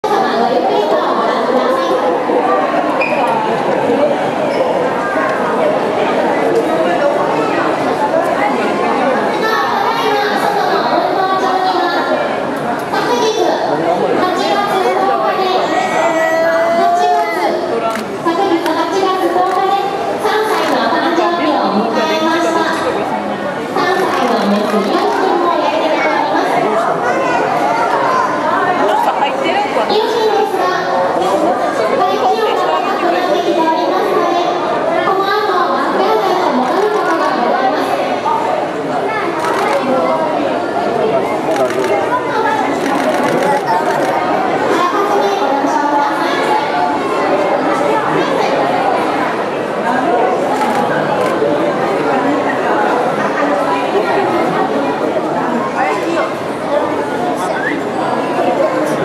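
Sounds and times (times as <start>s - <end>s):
crowd chattering: 0.0s - 59.0s.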